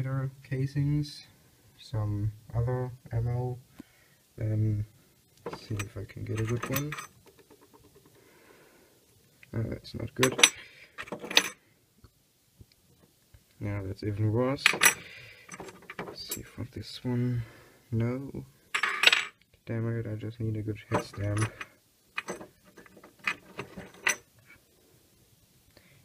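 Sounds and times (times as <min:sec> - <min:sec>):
metal cartridge casings clinking: 0:05.5 - 0:07.5, 0:10.2 - 0:11.6, 0:14.6 - 0:16.5, 0:18.7 - 0:19.4, 0:20.9 - 0:24.2.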